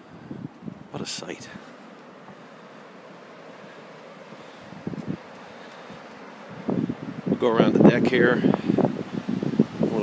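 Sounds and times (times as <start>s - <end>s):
wind on microphone: 0.0s - 1.6s, 4.6s - 10.0s
surf washing onto beach: 0.0s - 10.0s.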